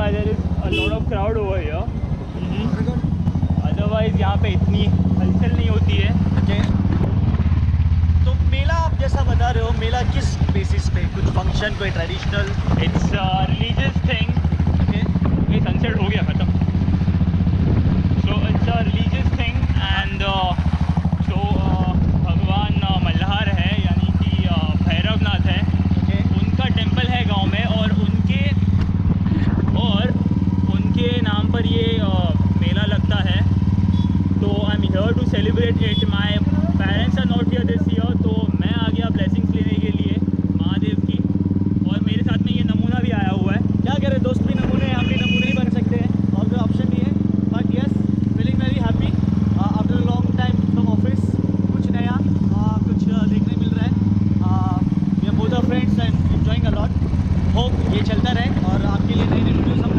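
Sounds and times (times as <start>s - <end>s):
motorcycle engine running: 0.0s - 59.9s
people's voices: 21.3s - 41.2s.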